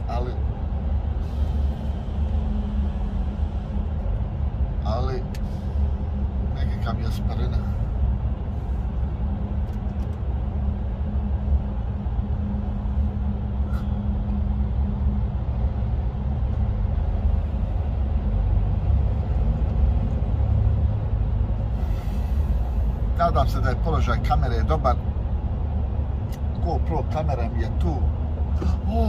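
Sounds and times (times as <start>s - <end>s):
constant low hum: 0.0s - 29.0s
lorry engine and tyres droning: 0.0s - 29.0s.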